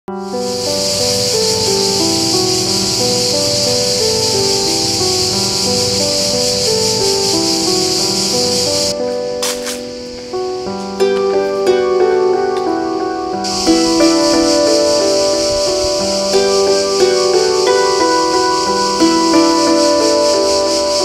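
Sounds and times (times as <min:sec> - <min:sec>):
cicadas buzzing: 0:00.1 - 0:21.0
slow background music: 0:00.1 - 0:21.0.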